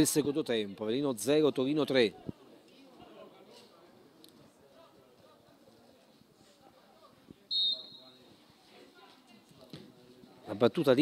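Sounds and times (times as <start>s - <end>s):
referee's whistle blast: 7.5s - 8.2s.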